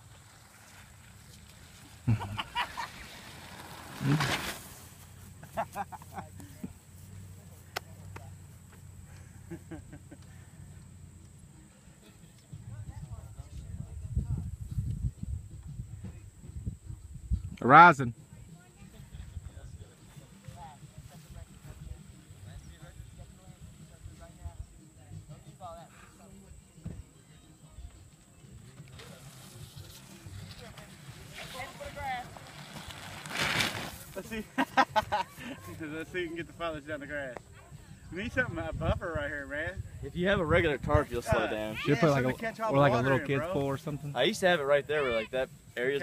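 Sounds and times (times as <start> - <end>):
faint distant voices: 0.0 - 46.0
person sliding down wet plastic: 0.4 - 5.1, 29.0 - 34.4
wind buffeting microphone: 12.7 - 17.5, 38.2 - 41.5.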